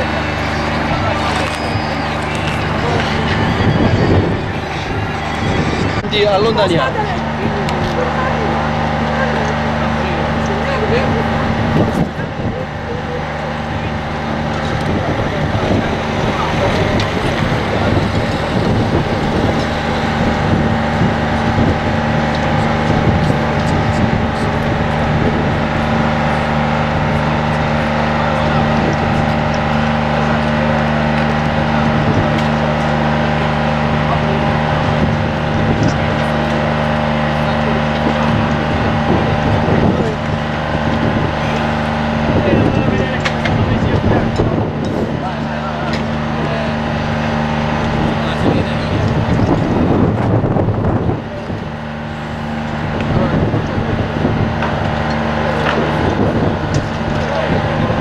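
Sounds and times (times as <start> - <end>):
large engine running steadily: 0.0 - 58.0
people talking: 0.0 - 58.0.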